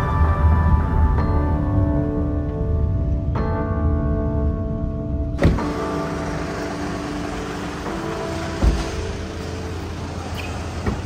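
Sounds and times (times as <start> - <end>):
road and engine hum: 5.3 - 11.0
low thud: 5.4 - 5.9.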